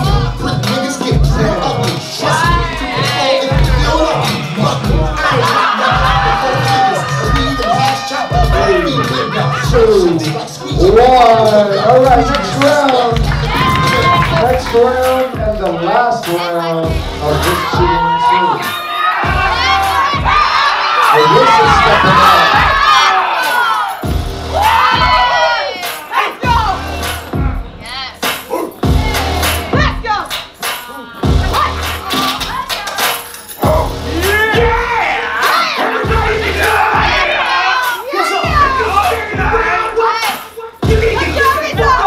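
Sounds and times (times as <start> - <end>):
crowd shouting and cheering: 0.0 - 42.0
hip hop music with thudding beat: 0.0 - 42.0.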